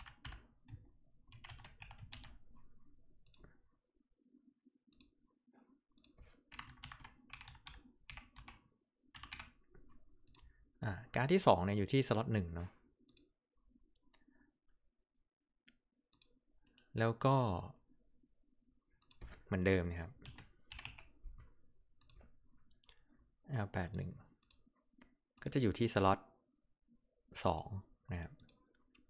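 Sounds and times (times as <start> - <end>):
computer mouse clicks: 3.2 - 3.6, 4.9 - 5.2, 5.9 - 8.6, 9.2 - 10.6, 13.1 - 13.3, 16.1 - 16.9, 19.0 - 19.4, 22.0 - 23.0, 23.8 - 25.6, 28.4 - 29.0.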